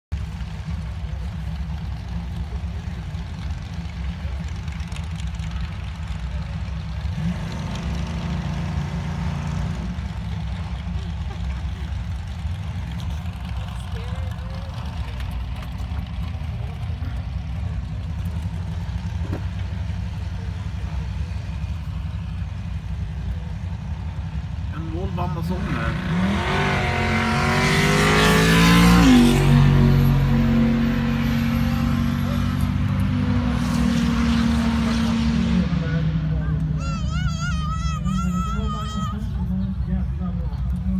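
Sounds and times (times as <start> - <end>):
race car engines idling: 0.1 - 40.9.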